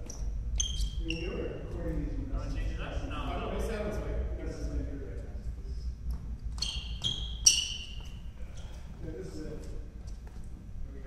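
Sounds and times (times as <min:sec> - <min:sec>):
shoes squeaking on wooden floor: 0:06.1 - 0:09.0.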